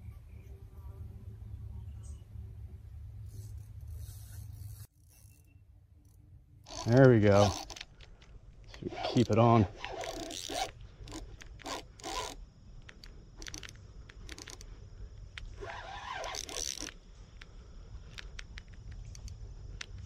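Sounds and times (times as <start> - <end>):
fishing reel drag zipping: 3.3 - 8.0, 8.7 - 14.7, 15.4 - 17.0.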